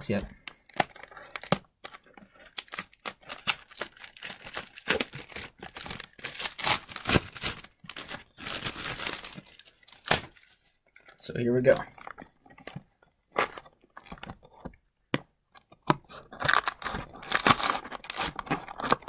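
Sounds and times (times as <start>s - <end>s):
plastic shrink-wrap tearing and crinkling: 0.0s - 10.8s, 16.2s - 19.0s.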